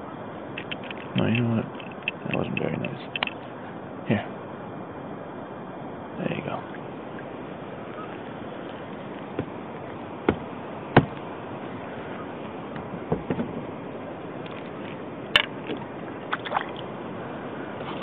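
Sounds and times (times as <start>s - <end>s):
water sounds: 13.7s - 18.0s.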